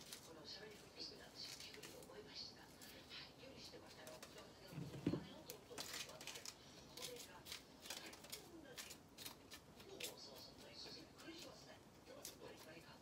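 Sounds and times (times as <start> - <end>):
soft thump: 4.8 - 5.3
peppers being torn apart: 5.4 - 10.6.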